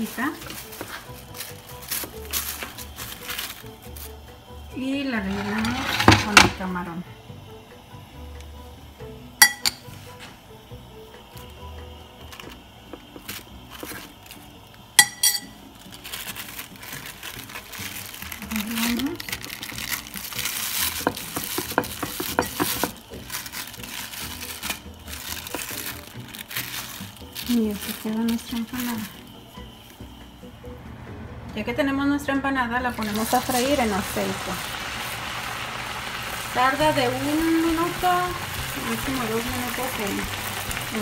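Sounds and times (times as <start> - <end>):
plastic sheet rustling: 0.0 - 4.2, 15.7 - 29.4
metal spoon clinking on glass bowl: 9.4 - 9.8, 15.0 - 15.6.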